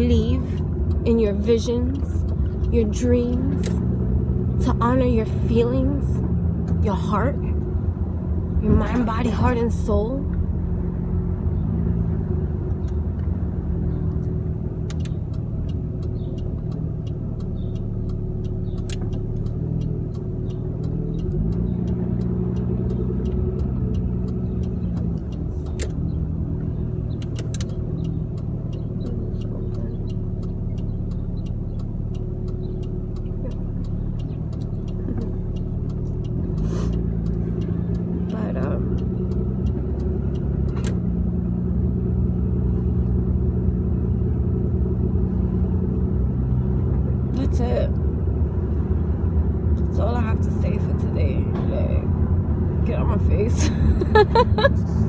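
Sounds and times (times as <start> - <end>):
car engine rumble: 0.0 - 55.0
road noise: 0.0 - 55.0
small clicks: 14.0 - 41.2.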